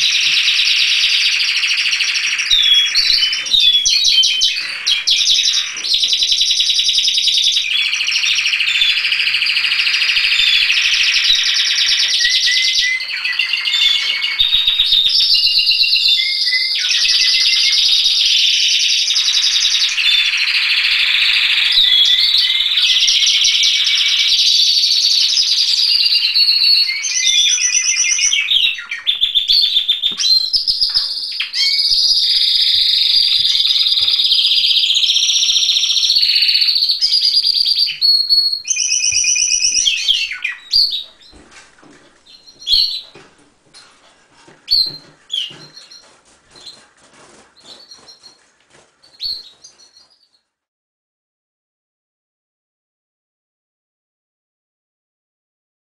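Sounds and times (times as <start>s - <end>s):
canaries singing trills: 0.0s - 50.4s.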